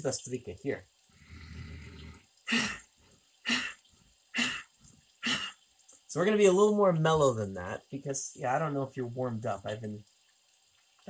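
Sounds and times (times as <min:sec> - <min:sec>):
forceful breath exhalations: 0:01.2 - 0:02.8.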